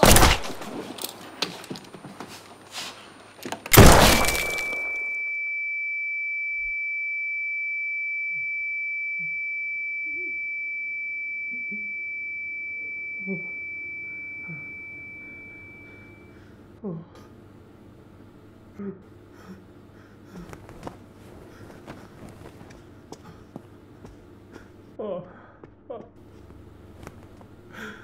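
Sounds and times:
high steady ringing tone: 4.1s - 16.8s
faint groans of men: 16.8s - 17.4s, 18.7s - 19.7s.

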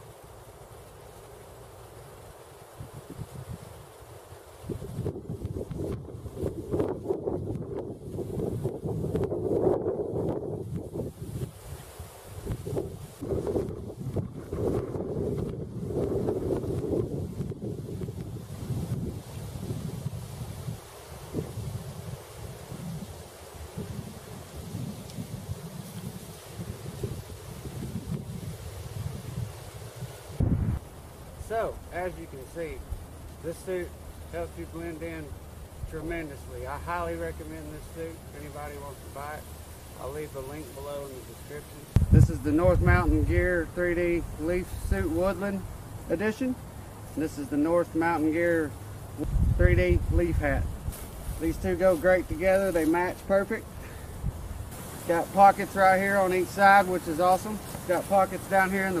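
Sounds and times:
wind buffeting microphone: 2.8s - 3.9s, 4.6s - 47.1s, 48.4s - 59.0s.

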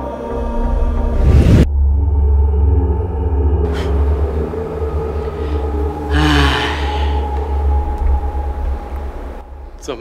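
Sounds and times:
deep rumbling drone: 0.2s - 10.0s
person sighing: 5.4s - 7.4s.

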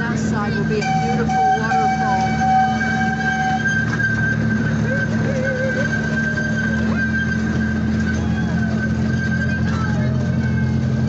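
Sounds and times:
high-pitched whine: 0.0s - 11.0s
low train hum: 0.0s - 11.0s
lower tone: 0.0s - 11.0s.

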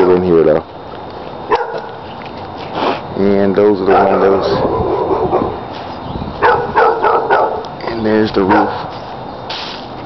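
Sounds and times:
dog barking: 1.5s - 2.0s, 3.8s - 5.6s, 6.4s - 8.9s.

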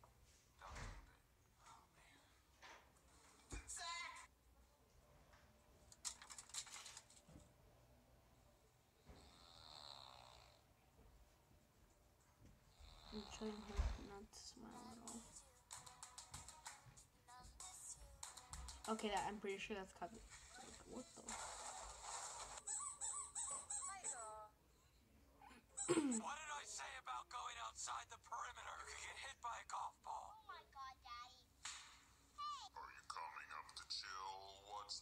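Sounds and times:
faint snore: 9.0s - 10.6s, 12.7s - 14.2s.

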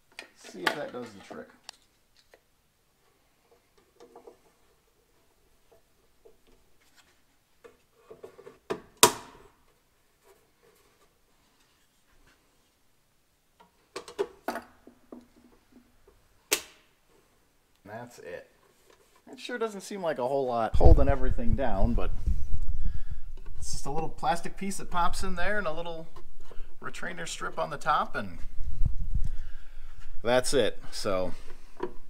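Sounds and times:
sharp plastic snaps: 16.5s - 16.9s.

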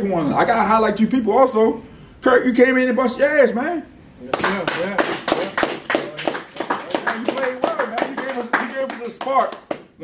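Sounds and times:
people clapping: 4.3s - 10.0s.

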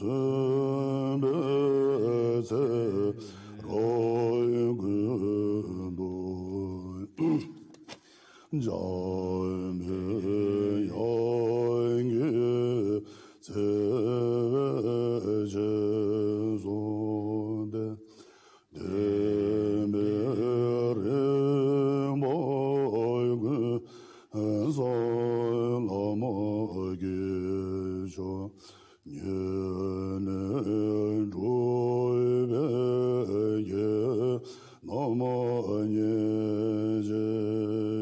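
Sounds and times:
man chanting in a deep voice: 0.0s - 7.2s, 8.5s - 18.0s, 18.8s - 38.0s.

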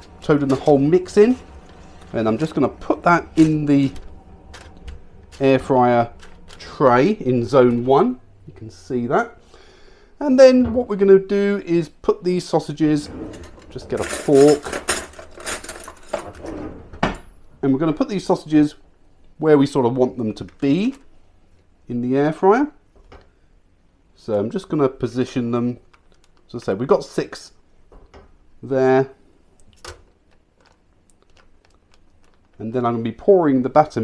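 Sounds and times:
metal cutlery clinking in drawer: 13.3s - 16.5s.

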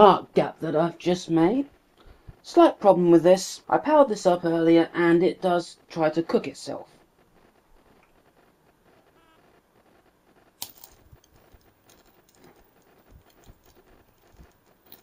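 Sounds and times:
electric arc crackling: 2.4s - 15.0s.

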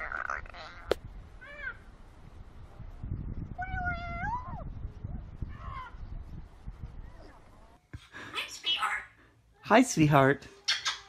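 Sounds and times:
parrot calling: 10.6s - 11.0s.

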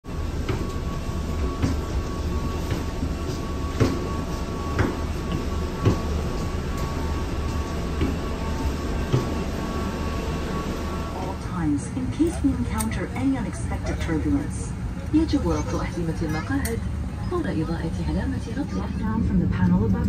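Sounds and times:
steady low rumble: 0.0s - 20.0s
footsteps on boarding bridge floor: 0.4s - 9.5s.

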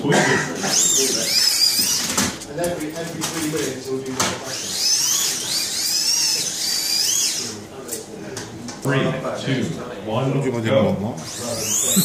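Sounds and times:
electric motors whining: 0.5s - 8.1s, 11.1s - 12.0s.

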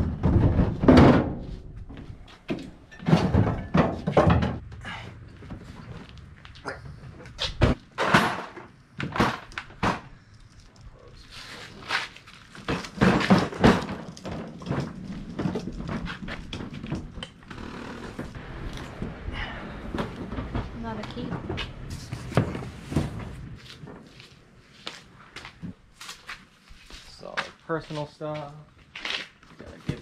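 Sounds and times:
plastic bins knocking and clattering: 0.0s - 1.9s, 2.5s - 4.7s, 7.6s - 10.1s, 12.6s - 17.2s, 19.0s - 24.0s.

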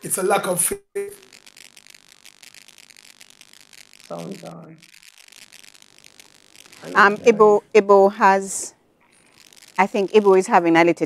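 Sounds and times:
rapid irregular clicking and crackle: 1.1s - 7.0s, 9.0s - 11.0s.

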